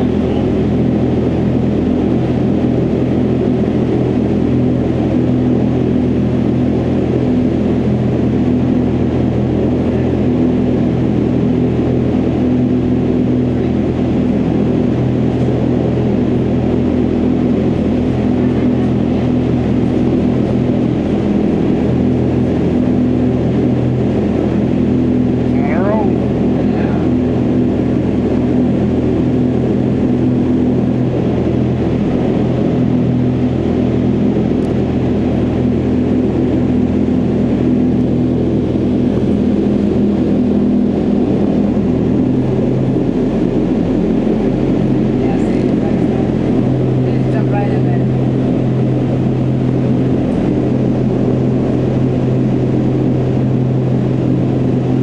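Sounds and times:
low fan hum: 0:00.0 - 0:55.0.

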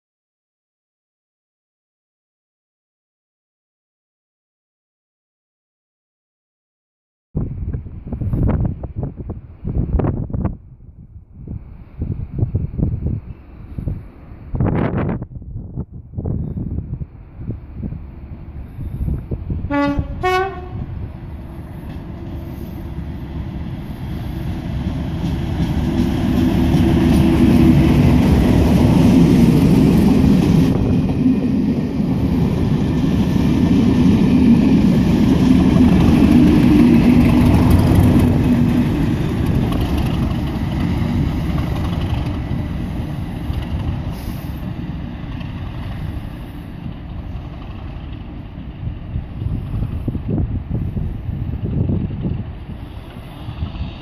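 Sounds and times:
diesel locomotive engines passing: 0:07.5 - 0:54.0
two-note locomotive horn: 0:19.7 - 0:21.0.

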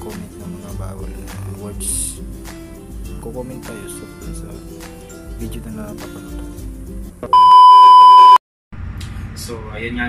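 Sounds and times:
electronic beep tone: 0:07.3 - 0:08.4.

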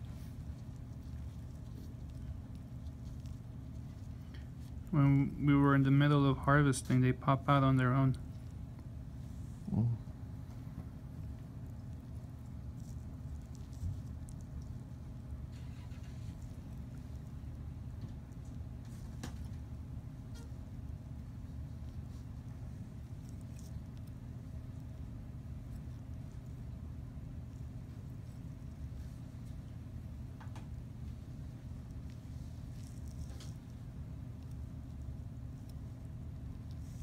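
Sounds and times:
low machine hum: 0:00.0 - 0:37.0.

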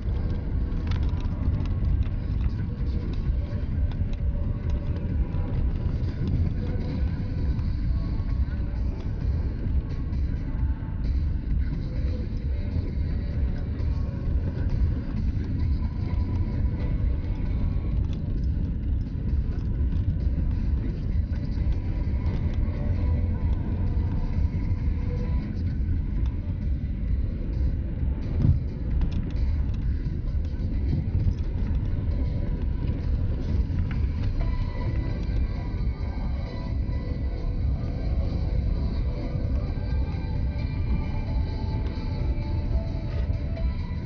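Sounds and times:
car engine and tyres rumbling: 0:00.0 - 0:44.0
quiet music: 0:00.0 - 0:44.0.

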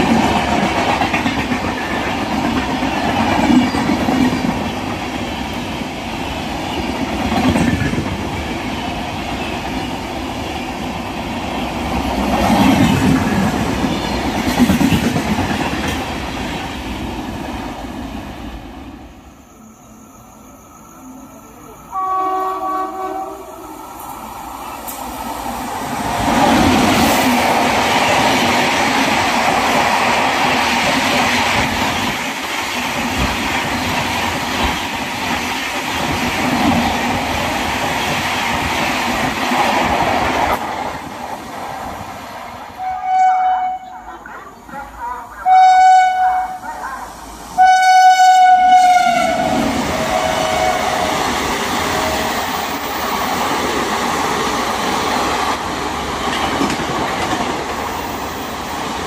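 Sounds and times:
train passing at speed: 0:00.0 - 0:59.0
train horn: 0:21.9 - 0:23.7, 0:42.8 - 0:46.7, 0:47.6 - 0:51.2.

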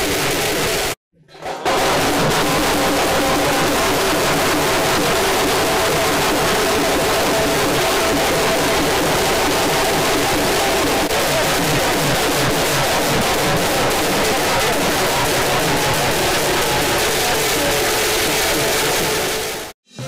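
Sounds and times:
festival drumming and band music: 0:00.0 - 0:20.0.

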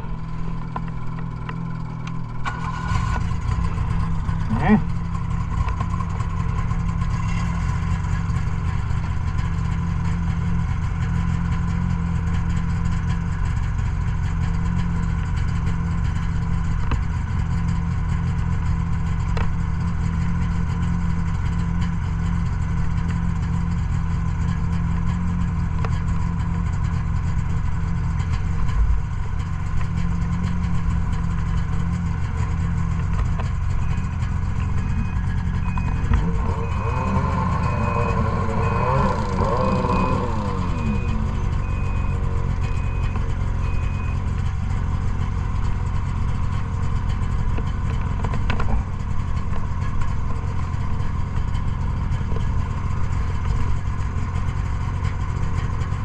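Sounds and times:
snowmobile engine idling: 0:00.0 - 0:56.0.

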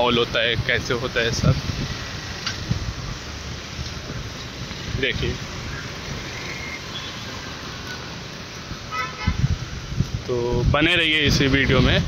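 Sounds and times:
street traffic: 0:00.0 - 0:12.0
faint high horn toot: 0:06.6 - 0:07.4, 0:08.9 - 0:09.5
car horn toot: 0:06.8 - 0:07.3, 0:08.9 - 0:09.5.

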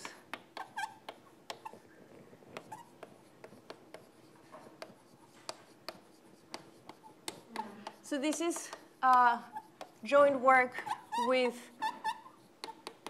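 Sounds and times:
chalk scratching on blackboard: 0:00.0 - 0:13.0.

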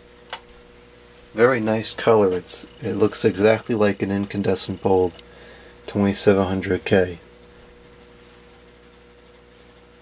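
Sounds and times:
faint electrical hum: 0:00.0 - 0:10.0
thin steady mid-pitched tone: 0:01.4 - 0:07.3.

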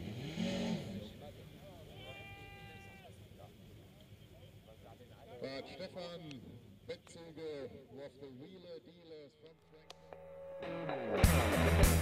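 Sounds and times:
distant drag car engine revving: 0:00.0 - 0:01.7.

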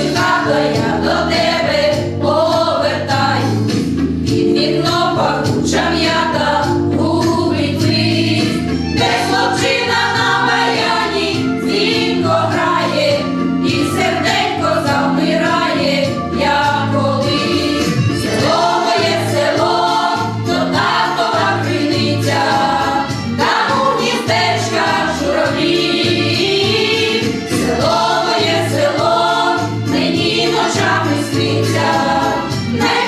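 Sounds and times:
women's choir singing folk song: 0:00.0 - 0:03.7, 0:04.4 - 0:33.0
low instrumental accompaniment: 0:00.0 - 0:33.0.

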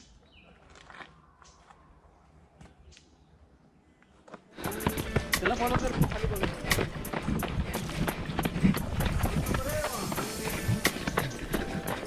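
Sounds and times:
running footsteps on dirt trail: 0:04.2 - 0:12.0
music: 0:04.6 - 0:12.0.

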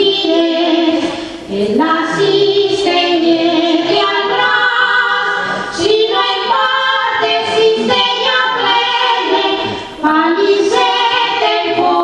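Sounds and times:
women singing folk song: 0:00.0 - 0:12.0.

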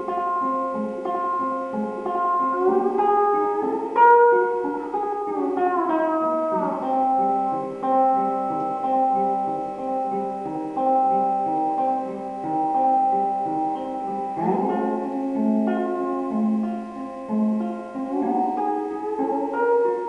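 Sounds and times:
cigar-box guitar playing: 0:00.0 - 0:20.0.

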